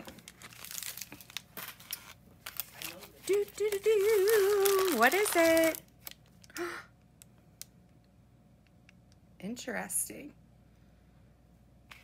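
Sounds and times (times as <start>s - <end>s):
plastic mailer crinkling: 0.0s - 6.4s.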